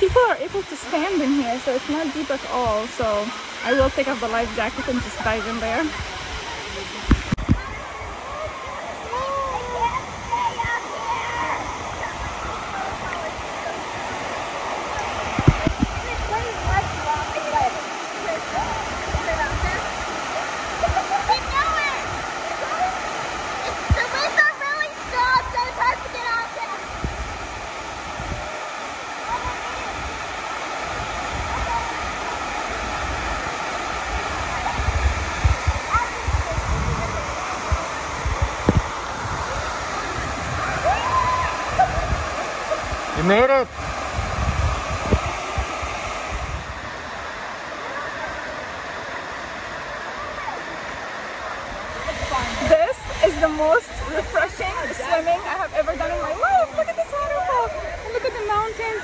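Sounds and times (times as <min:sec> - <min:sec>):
waterfall rushing: 0:00.0 - 0:59.0.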